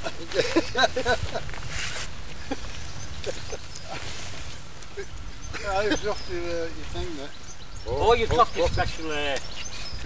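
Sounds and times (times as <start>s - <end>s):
wind rumble on microphone: 0.7s - 3.3s, 4.3s - 10.0s.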